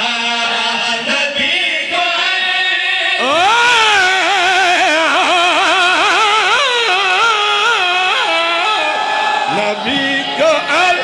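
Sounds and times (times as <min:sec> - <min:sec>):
man singing melismatic recitation: 0:00.0 - 0:11.0.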